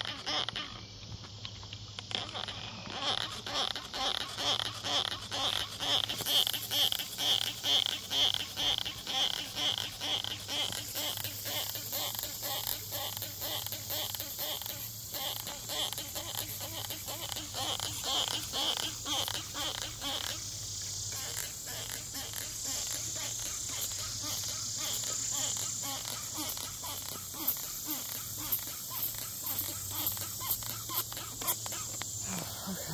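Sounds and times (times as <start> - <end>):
high-pitched insect buzz: 0.0 - 32.9
rhythmic pulsed insect call: 0.0 - 32.9.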